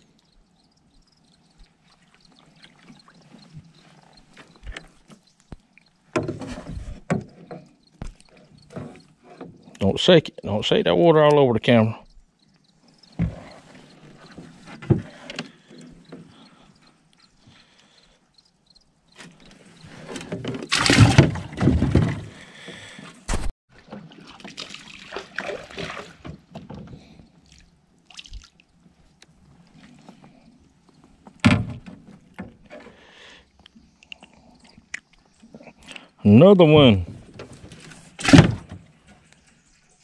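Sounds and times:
water splashing around kayak: 0:23.7 - 0:28.9.

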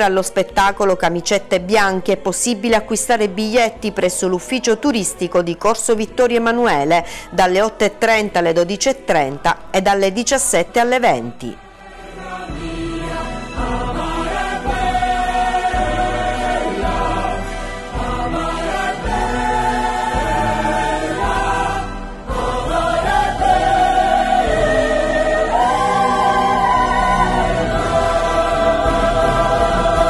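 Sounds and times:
ensemble of voices singing: 0:06.8 - 0:09.7, 0:11.4 - 0:30.0.

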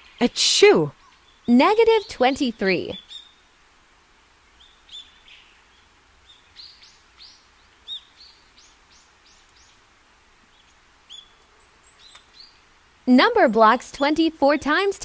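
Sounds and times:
small birds chirping: 0:00.0 - 0:03.6, 0:04.2 - 0:15.0
soft hiss: 0:00.0 - 0:15.0.

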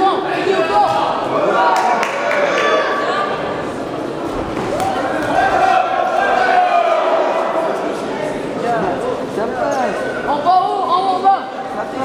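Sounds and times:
spectators shouting in a hall: 0:00.0 - 0:11.8.

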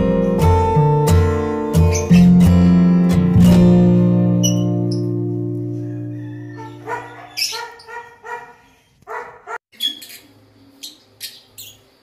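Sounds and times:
guitar music: 0:00.0 - 0:07.3
sharp high chirps: 0:04.4 - 0:05.1
short pitched yelping calls: 0:04.4 - 0:05.1, 0:06.5 - 0:10.3.

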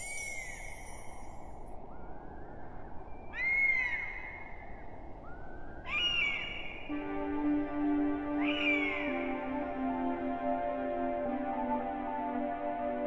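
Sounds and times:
soft ambient music: 0:05.2 - 0:13.0.

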